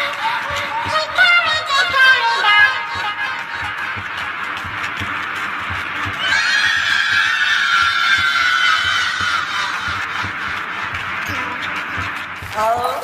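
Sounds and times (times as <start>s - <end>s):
high squealing cry: 6.2s - 10.2s.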